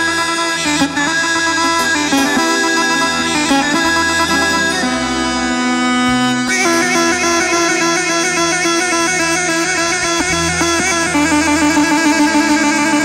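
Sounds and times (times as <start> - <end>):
double-pipe reed melody with drone: 0.0 - 13.0
low bass line: 0.7 - 13.0.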